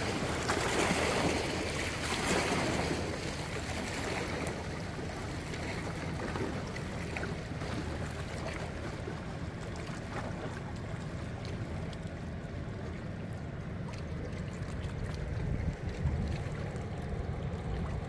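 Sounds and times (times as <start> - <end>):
boat engine drone: 0.0 - 18.0
water washing at bank: 0.0 - 18.0.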